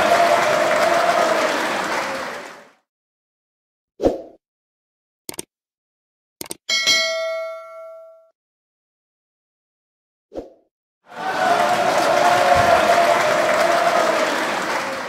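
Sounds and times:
notification bell ding: 6.7s - 8.3s.

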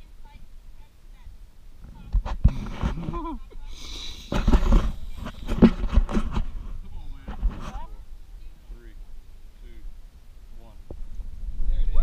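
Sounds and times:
rumbling wind: 0.0s - 12.0s
microphone handling noise: 1.8s - 8.1s, 10.8s - 12.0s
man laughing: 2.9s - 4.4s.

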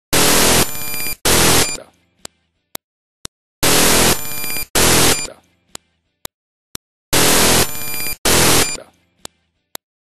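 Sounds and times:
harsh static-like electronic noise: 0.1s - 1.8s, 3.6s - 5.3s, 7.1s - 8.8s.

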